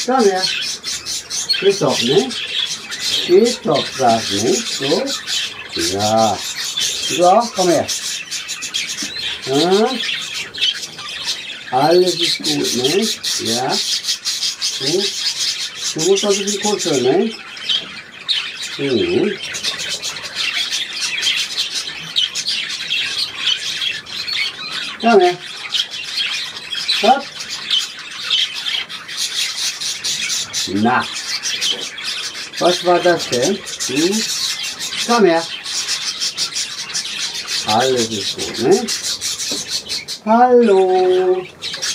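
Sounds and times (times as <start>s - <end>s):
budgerigars chattering and warbling: 0.0s - 41.9s.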